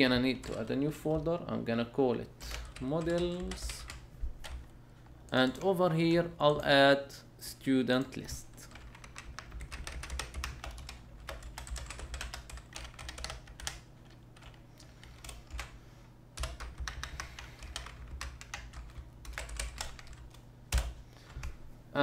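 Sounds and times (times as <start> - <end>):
typing on computer keyboard: 8.6 - 15.7, 16.4 - 21.5.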